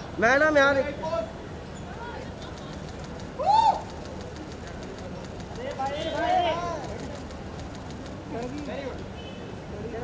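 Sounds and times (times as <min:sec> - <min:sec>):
low crowd background: 0:00.0 - 0:10.0
young woman whooping: 0:03.4 - 0:03.9.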